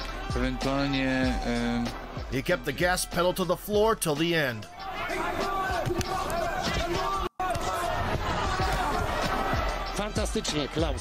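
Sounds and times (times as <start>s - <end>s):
arena crowd shouting: 0.0s - 1.8s, 4.6s - 11.0s.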